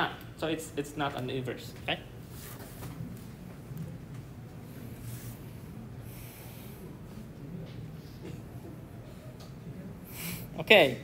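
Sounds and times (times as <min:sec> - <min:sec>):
person breathing out through nose: 0:10.1 - 0:10.5.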